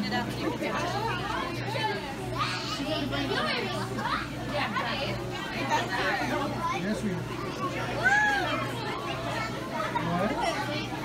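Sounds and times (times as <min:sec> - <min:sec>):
indistinct chatter and children's voices: 0:00.0 - 0:11.0.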